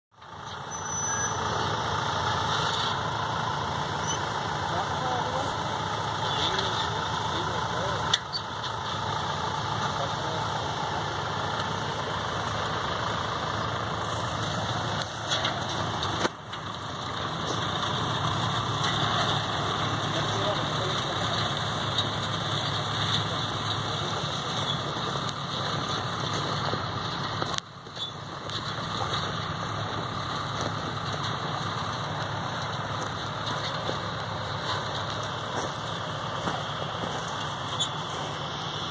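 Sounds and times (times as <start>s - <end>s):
tractor engine running: 0.1s - 38.9s.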